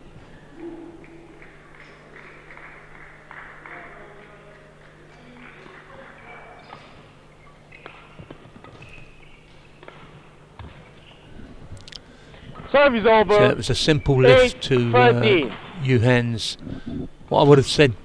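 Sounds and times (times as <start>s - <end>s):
steady low hum: 0.0s - 4.2s.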